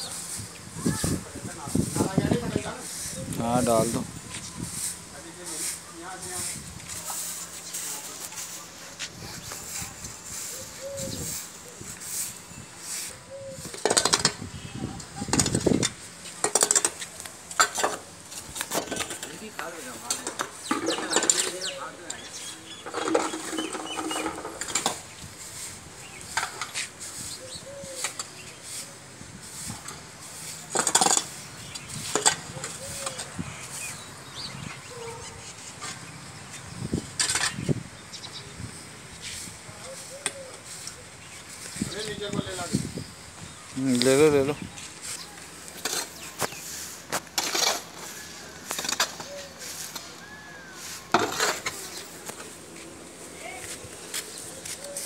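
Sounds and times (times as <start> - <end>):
broom brushing concrete floor: 0.0 - 14.1, 15.1 - 36.8, 38.7 - 43.0, 43.8 - 55.0
hoe scraping dirt: 15.3 - 34.4, 43.9 - 55.0
dirt being scooped clattering: 22.8 - 34.0, 44.0 - 52.9.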